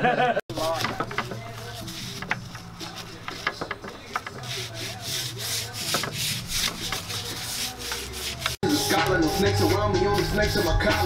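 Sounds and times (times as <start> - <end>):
stiff brush scrubbing metal: 0.5 - 11.0.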